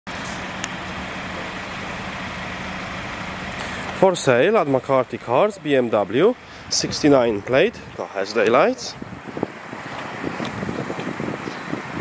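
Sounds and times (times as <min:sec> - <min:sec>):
motor vehicle noise: 0:00.1 - 0:12.0.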